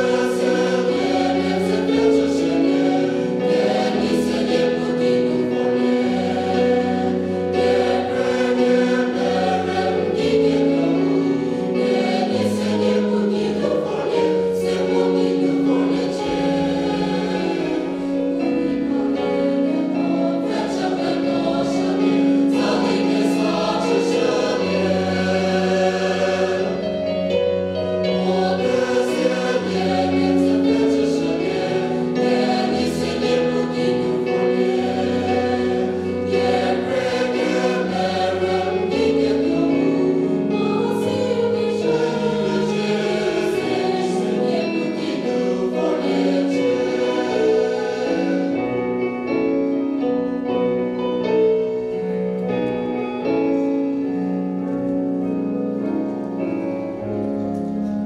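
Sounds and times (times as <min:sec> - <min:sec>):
mixed choir singing chords: 0:00.0 - 0:58.0.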